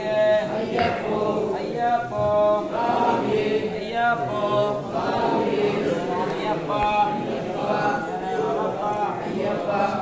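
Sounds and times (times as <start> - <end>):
group chanting: 0.0 - 10.0.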